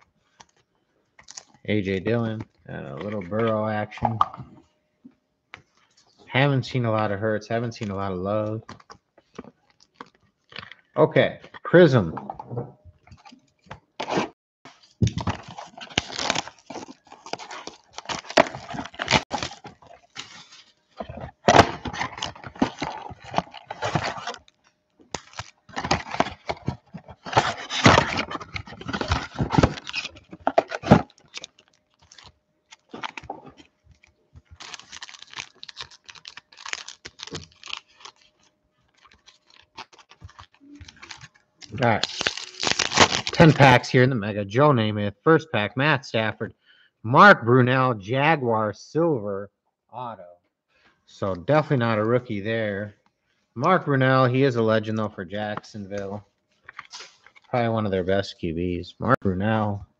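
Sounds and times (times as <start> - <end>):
cardboard and plastic tearing: 14.0 - 24.5, 25.1 - 43.8, 56.7 - 57.5.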